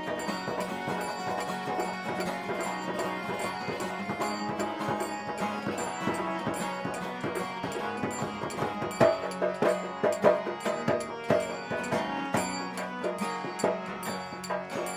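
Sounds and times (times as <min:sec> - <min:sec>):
acoustic guitar: 0:00.0 - 0:14.9
drum strikes: 0:00.0 - 0:14.9
hand cymbals: 0:00.0 - 0:14.9.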